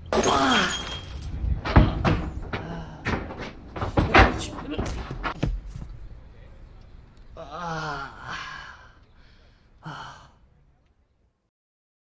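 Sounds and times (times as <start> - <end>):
man sobbing: 7.4 - 8.8.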